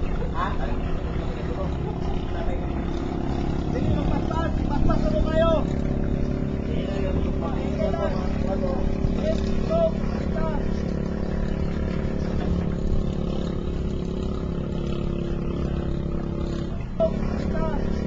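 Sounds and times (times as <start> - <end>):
boat engine running: 0.0 - 18.0
voices calling out: 0.0 - 18.0.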